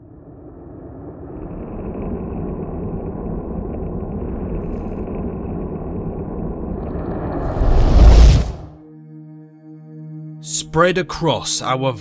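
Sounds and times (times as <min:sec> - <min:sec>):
deep rumbling sound effect: 0:00.0 - 0:08.8.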